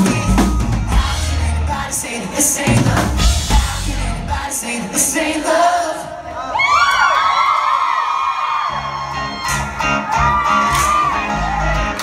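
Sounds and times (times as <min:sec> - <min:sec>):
bass and drums: 0:00.0 - 0:04.6, 0:08.7 - 0:12.0.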